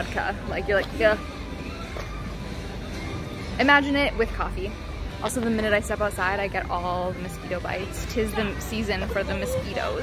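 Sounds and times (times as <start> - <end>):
city background rumble: 0.0 - 10.0.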